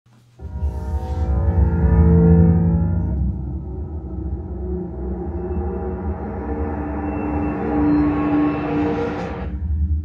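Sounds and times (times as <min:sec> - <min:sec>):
cinematic drone with heavy bass: 0:00.4 - 0:10.0.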